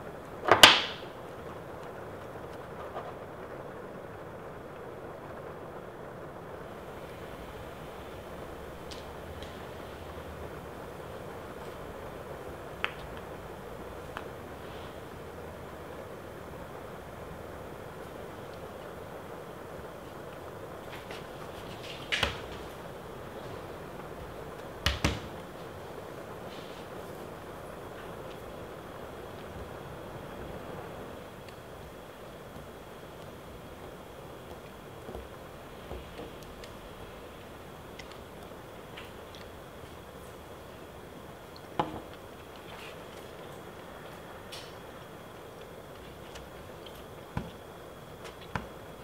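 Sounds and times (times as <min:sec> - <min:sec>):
steady hiss: 0:00.0 - 0:49.0.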